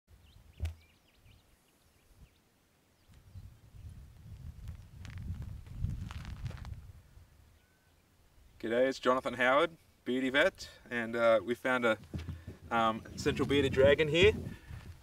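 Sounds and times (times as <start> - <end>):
wind rumble on microphone: 3.1 - 7.3, 12.0 - 15.0.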